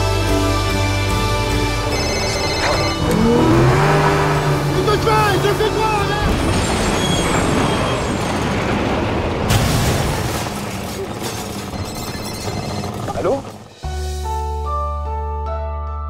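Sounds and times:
music: 0.0s - 6.5s, 11.7s - 16.0s
motorboat engine revving: 1.7s - 9.4s.

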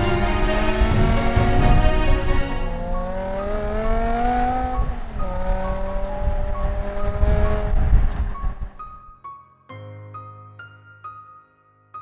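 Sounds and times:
car engine accelerating: 0.0s - 9.0s.

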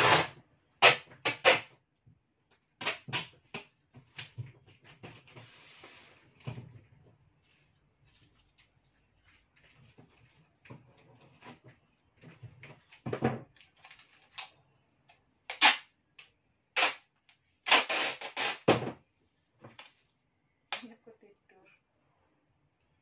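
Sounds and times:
tape ripping off roll: 0.0s - 1.7s, 15.5s - 15.9s, 16.7s - 18.9s
rustling and small knocks: 3.6s - 14.3s.

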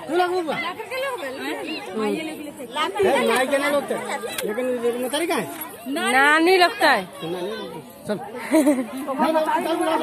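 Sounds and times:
people talking over each other: 0.0s - 10.0s.

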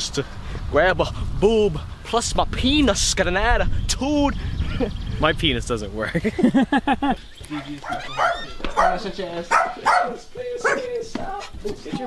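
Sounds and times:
dog barking: 7.5s - 10.9s.

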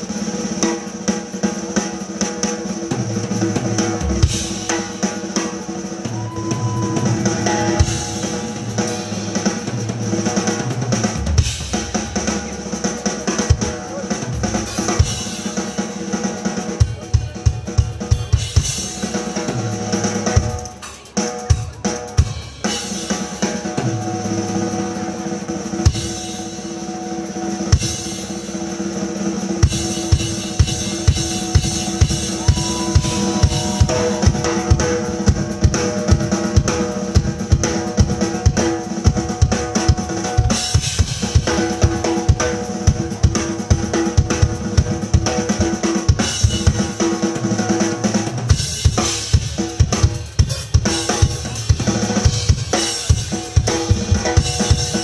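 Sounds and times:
drum kit solo: 0.0s - 55.0s.

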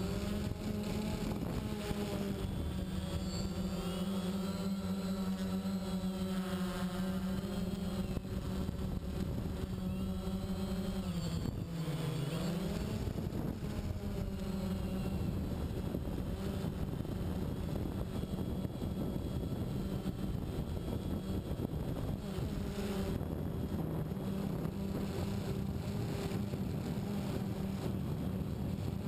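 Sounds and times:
drone motors buzzing: 0.0s - 29.0s.

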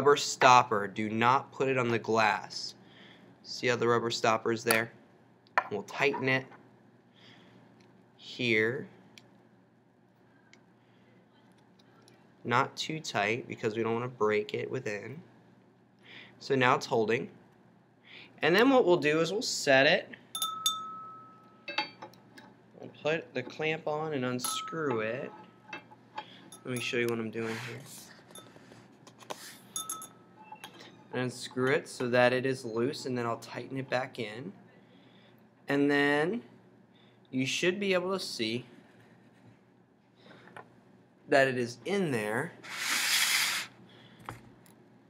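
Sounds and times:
glass lab equipment clinking: 20.4s - 22.1s, 24.4s - 27.1s, 28.2s - 28.6s, 29.7s - 31.2s.

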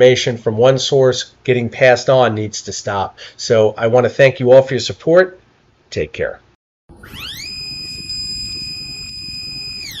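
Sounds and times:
high whistling tone: 6.9s - 10.0s.

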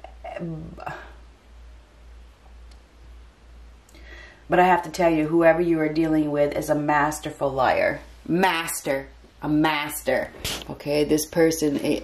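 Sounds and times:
woman making soft non-word sounds: 0.0s - 1.3s
low steady hum: 0.0s - 12.0s.

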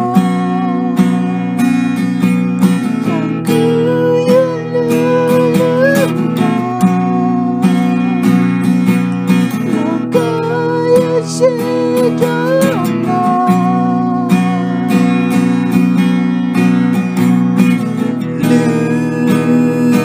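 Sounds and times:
acoustic guitar strumming: 0.0s - 20.0s
sliding held melody line: 0.0s - 20.0s.

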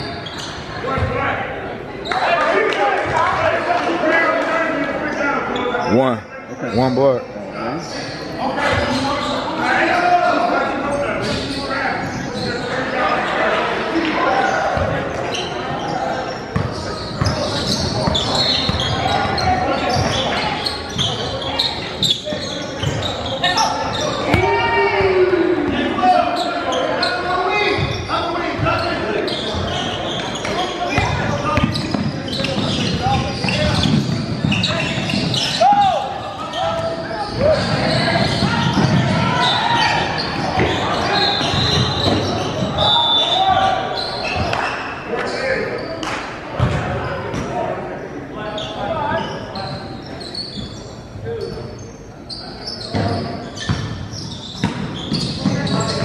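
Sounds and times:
people shouting: 23.6s - 26.2s.

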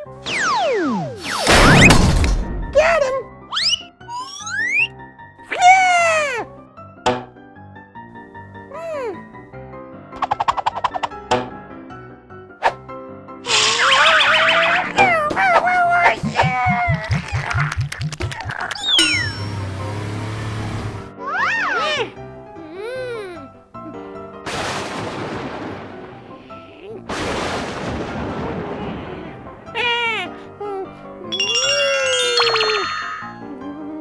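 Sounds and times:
soft background music: 2.2s - 17.2s, 19.4s - 34.0s
cartoon boing sound effect: 13.5s - 15.3s, 18.8s - 19.6s
lightning strike blasts: 24.5s - 26.3s, 27.1s - 29.5s.

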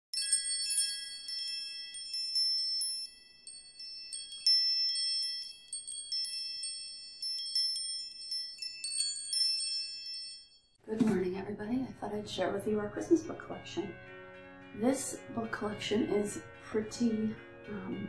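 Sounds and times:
metal chimes ringing: 0.1s - 10.8s.

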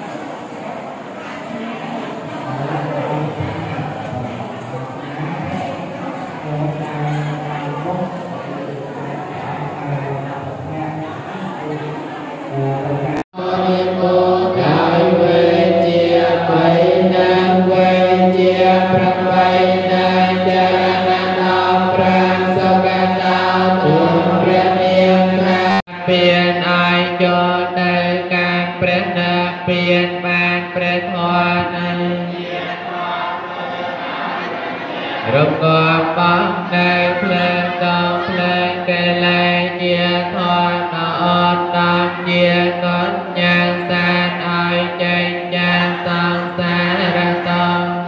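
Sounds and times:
person chanting: 1.4s - 48.0s.

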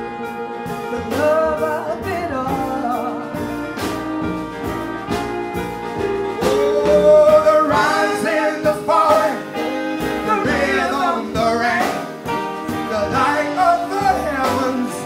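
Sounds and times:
live jazz band playing: 0.0s - 15.0s
person singing: 0.9s - 3.5s, 6.4s - 9.5s, 12.9s - 15.0s.

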